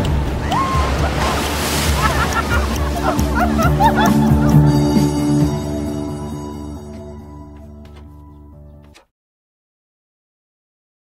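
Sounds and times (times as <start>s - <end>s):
ocean surf breaking: 0.0s - 6.0s
music with low held notes: 0.0s - 9.1s.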